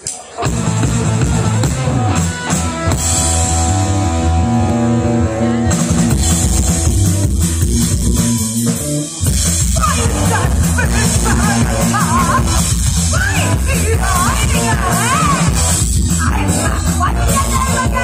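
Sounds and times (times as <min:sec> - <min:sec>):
drums and cymbals: 0:00.0 - 0:18.0
electric guitars: 0:00.0 - 0:18.0.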